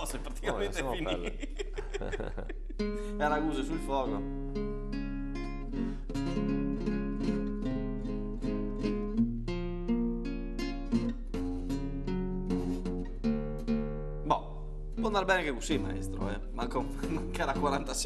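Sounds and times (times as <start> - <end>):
classical guitar solo: 2.8 - 18.0.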